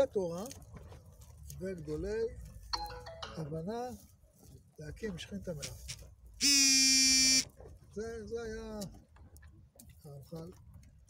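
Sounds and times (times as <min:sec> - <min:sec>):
loud steady buzzing tone: 0:06.4 - 0:07.5.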